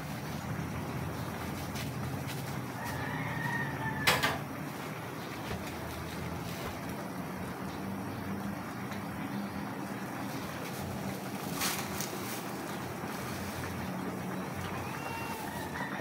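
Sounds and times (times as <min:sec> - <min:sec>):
liquid simmering: 0:00.0 - 0:16.0.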